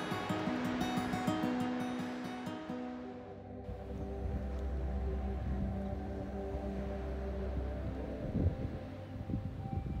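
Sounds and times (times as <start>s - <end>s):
music with steady tones: 0.0s - 10.0s
wind buffeting microphone: 3.7s - 10.0s.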